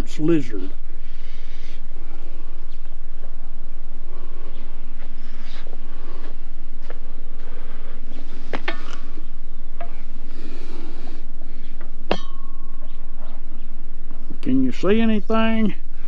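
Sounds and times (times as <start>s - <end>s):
steady low hum: 0.0s - 16.0s
sharp metallic clangs: 12.0s - 13.4s.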